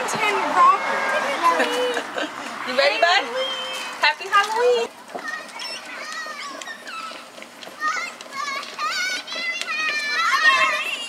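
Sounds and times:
children chattering and squealing: 0.0s - 11.0s.

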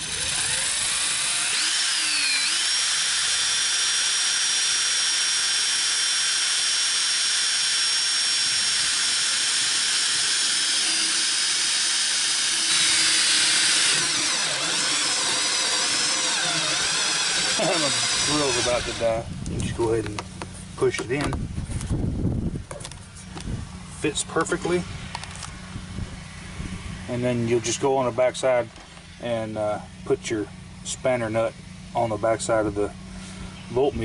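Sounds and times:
cordless drill motor whine: 0.0s - 27.8s.

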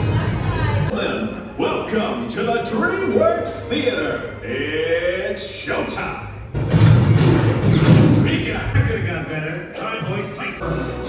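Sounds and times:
loud music with heavy low end: 6.5s - 9.0s.

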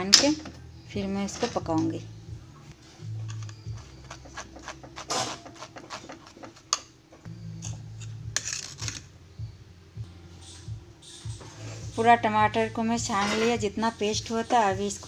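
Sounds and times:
metal spoon scraping mesh strainer: 1.3s - 2.0s, 3.1s - 6.9s, 7.6s - 9.1s, 13.1s - 13.6s
low hum: 7.2s - 13.0s.

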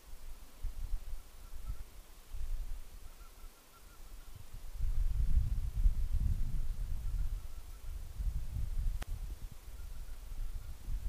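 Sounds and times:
bird call with short notes: 3.0s - 4.3s.

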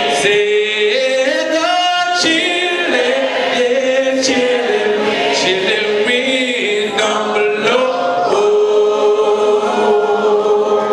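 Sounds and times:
congregation singing gospel: 0.0s - 10.9s.

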